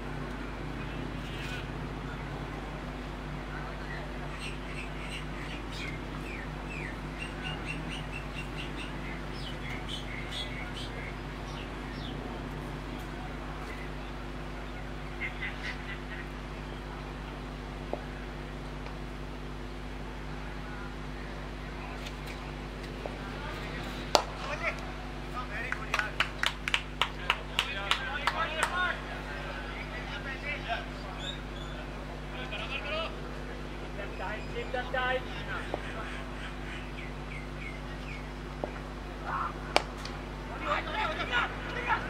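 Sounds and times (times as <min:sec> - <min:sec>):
cricket bat striking ball: 0:24.1 - 0:24.8, 0:39.7 - 0:40.2
hand claps: 0:24.2 - 0:24.9, 0:25.6 - 0:28.8, 0:39.7 - 0:40.2.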